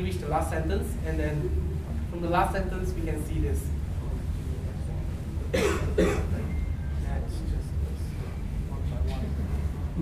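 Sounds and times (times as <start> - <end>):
low room hum: 0.0 - 10.0
person coughing: 5.5 - 6.4.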